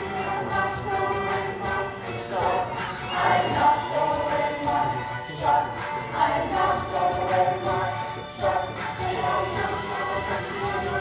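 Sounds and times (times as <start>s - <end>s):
chorus singing a show tune: 0.0s - 11.0s
rhythmic musical accompaniment: 0.0s - 11.0s.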